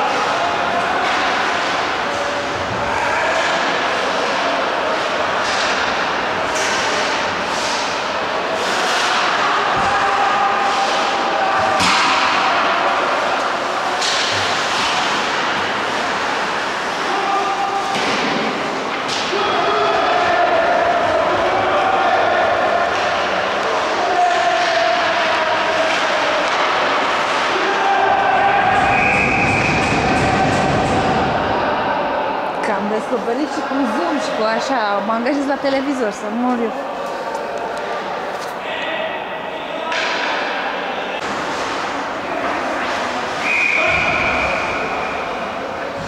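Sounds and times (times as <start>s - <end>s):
players shouting: 0.0s - 46.0s
puck and sticks knocking boards: 0.2s - 8.0s, 8.6s - 17.2s, 17.8s - 19.5s, 22.8s - 31.4s, 39.9s - 40.6s.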